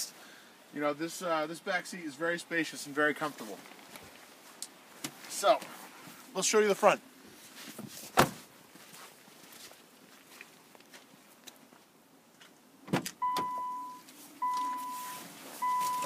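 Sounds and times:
car door clunking open: 0:12.8 - 0:13.6
car door shutting: 0:12.8 - 0:16.0
car warning chime beeps: 0:13.2 - 0:16.0.

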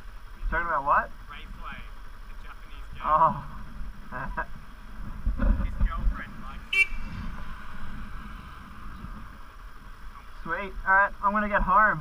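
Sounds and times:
motorcycle engine idling: 0:00.0 - 0:12.0
car passing: 0:02.4 - 0:10.6.

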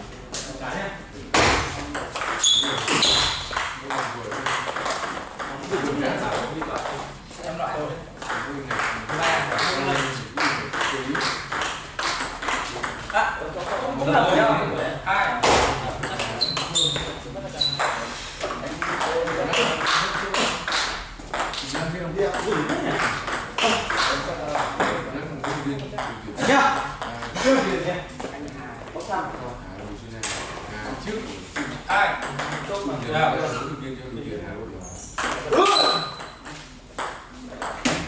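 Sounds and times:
people talking: 0:00.1 - 0:11.7, 0:12.5 - 0:20.8, 0:21.5 - 0:36.7
table tennis ball tapping: 0:01.4 - 0:07.0, 0:08.2 - 0:13.9, 0:18.8 - 0:26.2, 0:31.6 - 0:32.8, 0:36.2 - 0:38.0.

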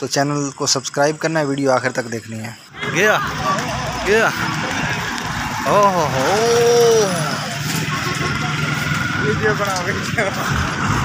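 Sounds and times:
people's voices: 0:00.0 - 0:11.0
vehicle engine running: 0:02.8 - 0:11.0.

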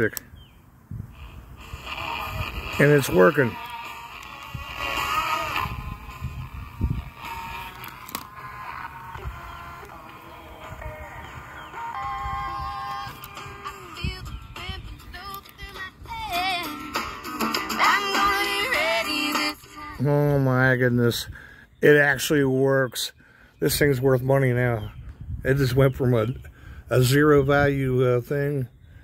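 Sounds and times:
radio tuning between stations: 0:01.1 - 0:16.2
music with singing from small radio: 0:01.2 - 0:20.0.

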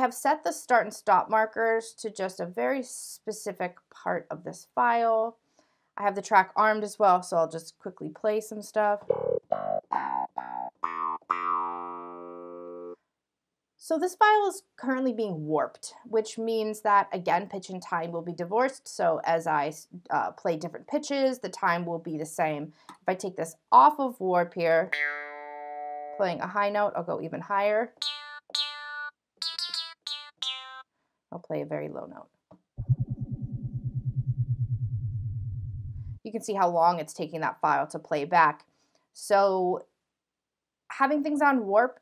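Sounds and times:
clavinet-like plucked notes: 0:09.0 - 0:13.0, 0:24.9 - 0:26.2, 0:28.0 - 0:30.8.

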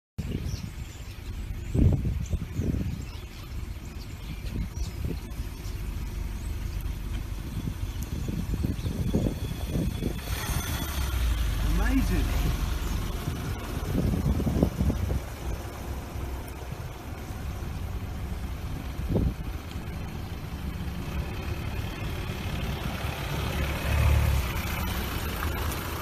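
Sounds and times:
fluttering low rumble: 0:00.3 - 0:26.0.

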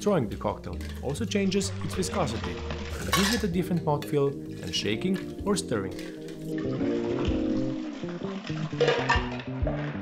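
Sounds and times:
background music: 0:00.0 - 0:10.0
liquid pouring into metal tin: 0:00.7 - 0:03.6, 0:04.6 - 0:09.6.

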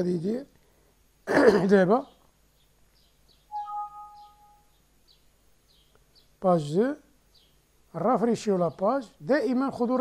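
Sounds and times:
faint bird chirps: 0:02.0 - 0:07.7
computer alert chime: 0:03.5 - 0:04.6.

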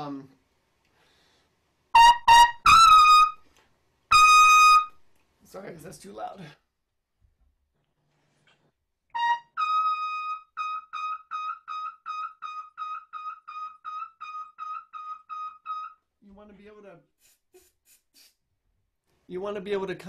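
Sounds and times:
trumpet playing high notes: 0:02.0 - 0:03.4, 0:04.1 - 0:05.0, 0:09.1 - 0:16.0
person speaking: 0:05.4 - 0:06.6, 0:16.2 - 0:18.3.

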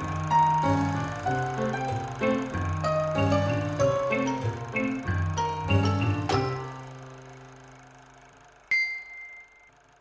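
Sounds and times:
bell-like ding: 0:08.7 - 0:09.8.

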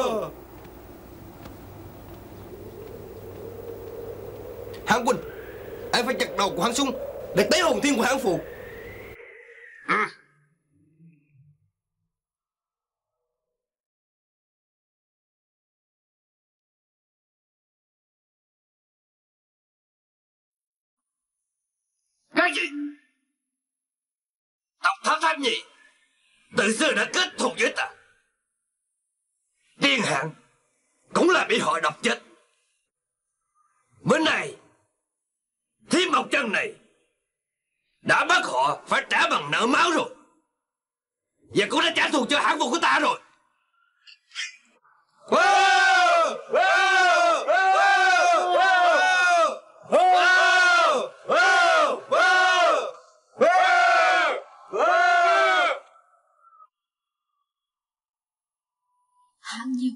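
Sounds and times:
man speaking: 0:04.9 - 0:05.3, 0:06.0 - 0:08.4
men shouting a battle cry: 0:45.3 - 0:55.8.

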